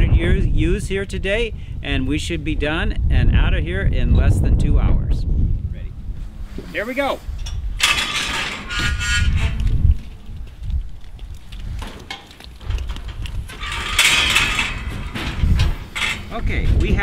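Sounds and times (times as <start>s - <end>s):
hooves knocking on metal panels: 7.4s - 17.0s.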